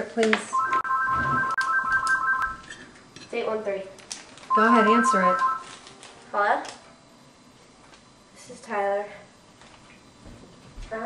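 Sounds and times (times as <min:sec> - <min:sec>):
telephone electronic trilling ring: 0:00.5 - 0:02.8, 0:04.5 - 0:05.8.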